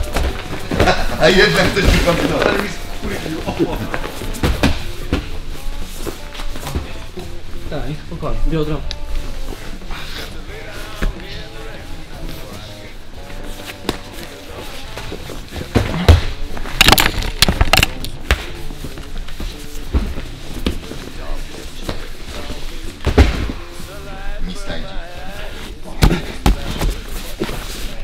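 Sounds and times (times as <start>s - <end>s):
background music: 0.0s - 28.0s
indistinct voices: 0.0s - 28.0s
thuds and slaps on mat: 23.0s - 23.6s.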